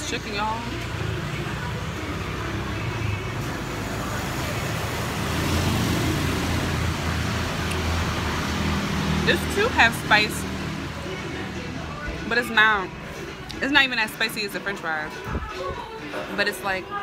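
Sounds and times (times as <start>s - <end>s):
vehicle engine rumbling: 0.0s - 17.0s.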